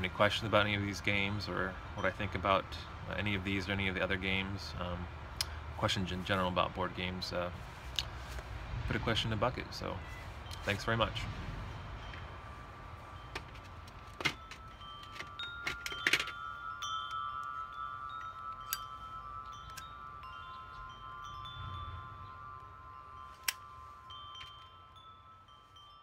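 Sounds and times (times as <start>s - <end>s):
chime tones ringing: 10.0s - 26.0s.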